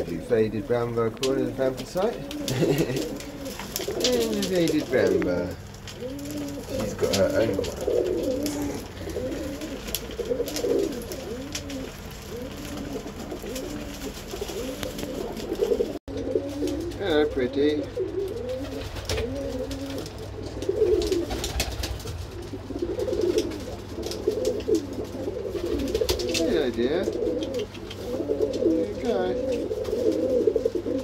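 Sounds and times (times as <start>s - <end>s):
pigeons cooing: 0.0s - 31.0s.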